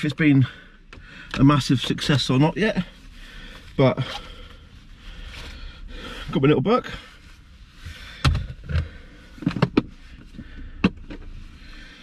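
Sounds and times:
knocks and clunks of objects moved: 0:08.2 - 0:11.3.

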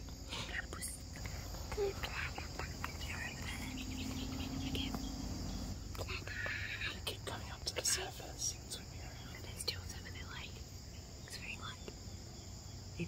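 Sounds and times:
insect chirring: 0:00.0 - 0:13.0
whispering and murmured voices: 0:00.3 - 0:05.0, 0:05.9 - 0:10.6, 0:11.3 - 0:11.9.

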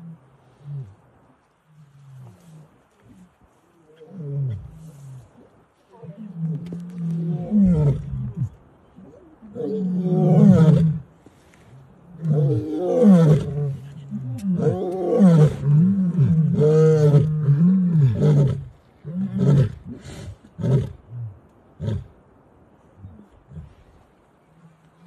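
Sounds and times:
lion roaring: 0:05.9 - 0:11.0.

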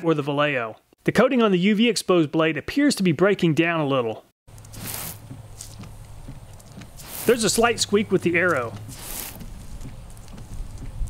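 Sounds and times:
steady low hum: 0:04.5 - 0:11.0
wiper blade squeaking: 0:04.5 - 0:11.0
water spray hissing: 0:04.6 - 0:11.0.

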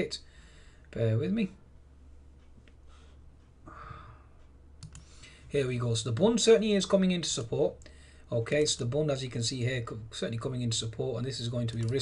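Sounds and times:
soft rustle or breath: 0:02.8 - 0:05.5
computer mouse clicks: 0:04.8 - 0:05.1, 0:11.7 - 0:12.0.

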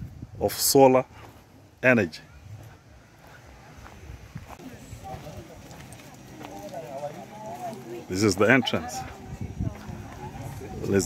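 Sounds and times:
footsteps on dirt path: 0:01.0 - 0:11.0
faint voices talking: 0:01.2 - 0:11.0.

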